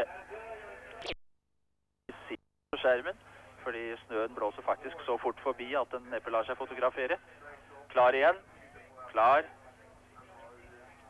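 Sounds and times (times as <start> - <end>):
male commentator speaking: 2.1 - 9.5.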